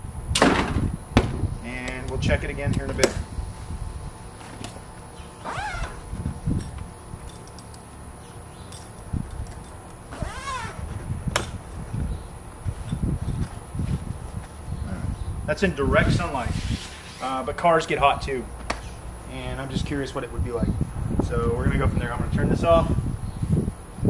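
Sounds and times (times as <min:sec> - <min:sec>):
fabric handling rumble: 0:09.1 - 0:15.1.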